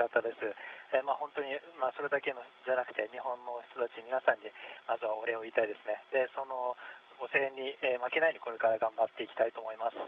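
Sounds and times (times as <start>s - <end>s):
man talking over radio: 0.0s - 10.0s.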